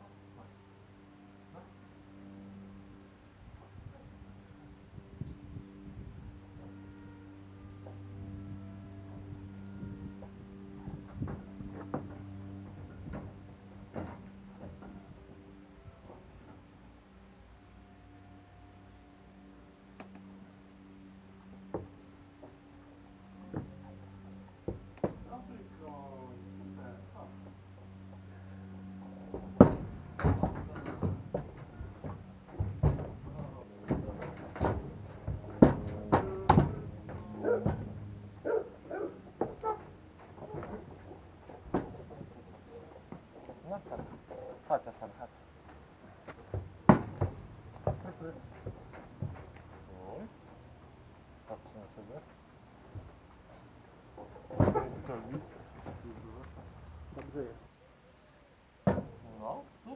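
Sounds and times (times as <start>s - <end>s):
steady low hum: 0.0s - 59.9s
hooves knocking on trailer ramp: 3.6s - 17.2s, 21.3s - 57.6s.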